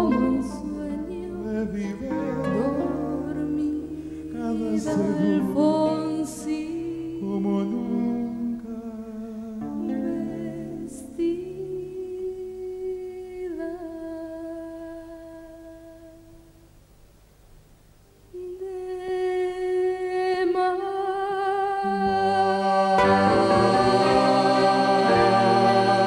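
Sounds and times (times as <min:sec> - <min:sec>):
acoustic guitar: 0:00.0 - 0:12.3
voices humming in harmony: 0:00.0 - 0:16.2, 0:18.5 - 0:26.0.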